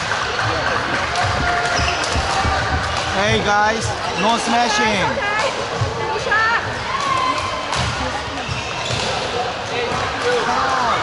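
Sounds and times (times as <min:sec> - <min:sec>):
many voices: 0:00.0 - 0:11.0
footfalls on court floor: 0:00.4 - 0:04.0.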